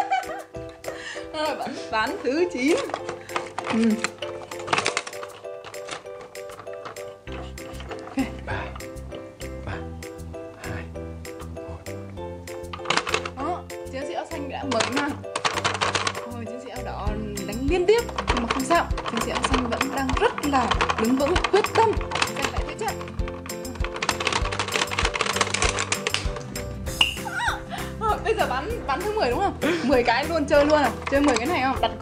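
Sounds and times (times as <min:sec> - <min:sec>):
laughter: 0:00.0 - 0:01.0
background music: 0:00.0 - 0:32.0.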